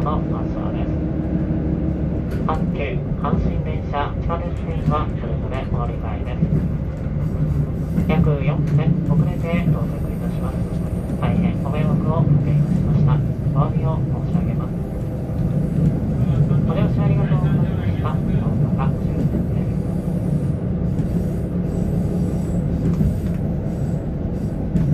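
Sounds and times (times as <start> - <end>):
pa announcement voice: 0.0 - 1.1, 2.4 - 6.7, 7.9 - 15.1, 15.8 - 19.8
diesel railcar humming: 0.0 - 24.9.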